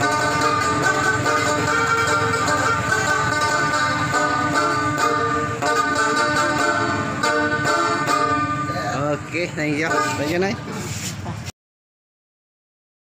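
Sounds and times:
banjo strumming: 0.0 - 11.2.

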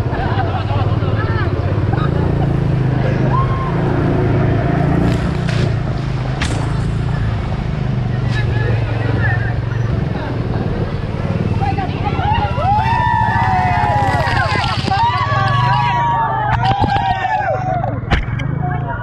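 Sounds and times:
road traffic: 0.0 - 19.0
vehicle engine running: 0.0 - 19.0
people shouting: 3.0 - 5.0, 11.8 - 18.0.

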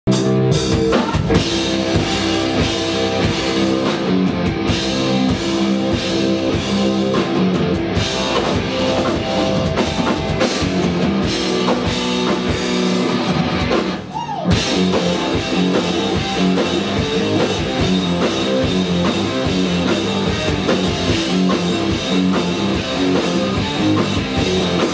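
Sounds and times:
rock band playing live: 0.1 - 24.9.

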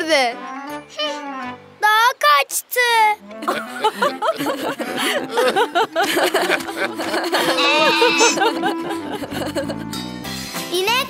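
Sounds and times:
light background music: 0.0 - 2.2, 3.2 - 11.0
girl and man laughing: 3.4 - 9.9.

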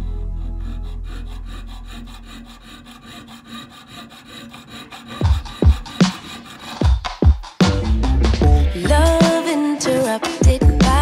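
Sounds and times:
piercing saw rasping metal: 0.0 - 7.7
beat with deep kick drums: 5.2 - 5.9, 6.9 - 9.2, 10.4 - 11.0
background music: 7.6 - 11.0.

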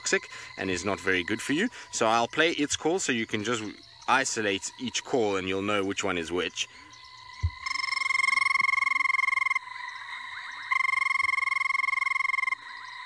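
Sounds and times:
short thump: 7.4 - 7.6
frog whirring trills: 7.4 - 9.7, 10.6 - 12.6.

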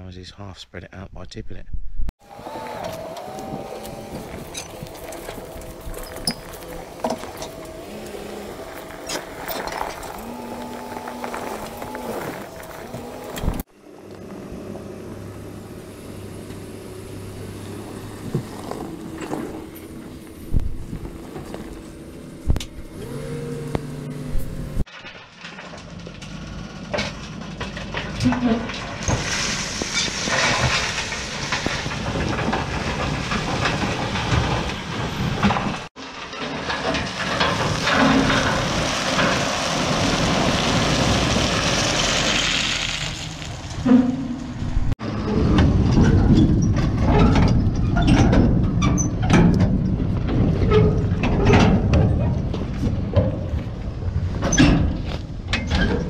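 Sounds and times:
tractor running: 2.2 - 56.0
wheels crunching over stones: 2.2 - 56.0
rubble rushing and rattling: 3.0 - 13.7, 24.4 - 56.0.

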